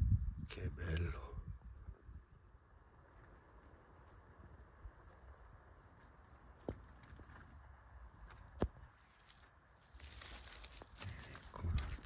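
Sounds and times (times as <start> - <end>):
footsteps through dry leaf litter: 9.0 - 12.0.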